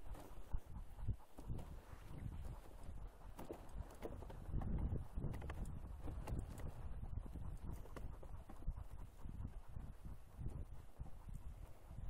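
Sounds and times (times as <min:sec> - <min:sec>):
dog paws pattering on snow: 0:00.0 - 0:12.0.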